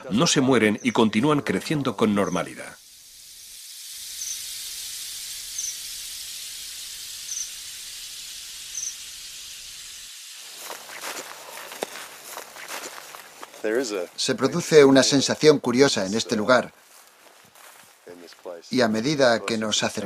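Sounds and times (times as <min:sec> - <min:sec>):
steady high hiss: 0:00.0 - 0:20.0.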